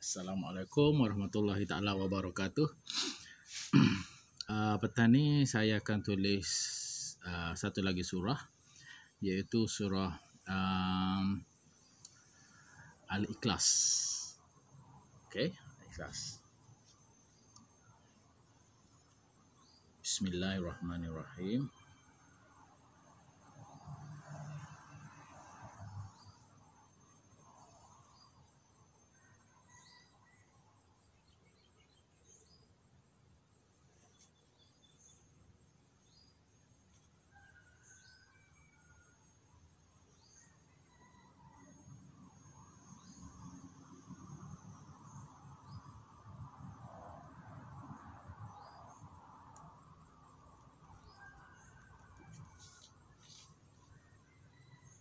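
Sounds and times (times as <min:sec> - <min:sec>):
insect trill: 0:00.0 - 0:55.0.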